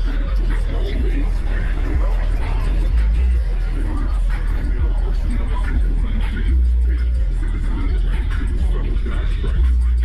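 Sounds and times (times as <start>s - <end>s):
music with heavy bass: 0.0s - 10.0s.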